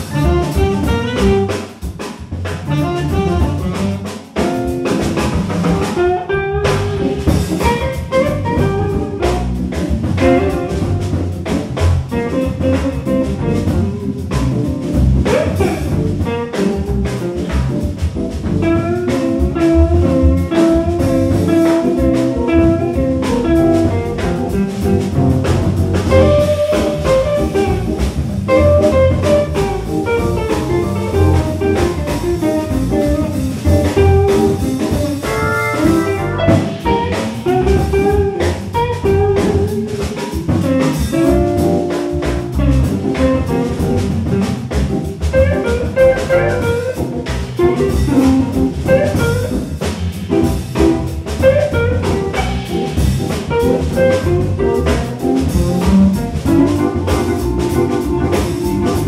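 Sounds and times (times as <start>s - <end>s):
organ chords: 0.0s - 1.7s, 2.7s - 59.0s
drum kit: 0.0s - 59.0s
electric guitar lead: 0.0s - 59.0s.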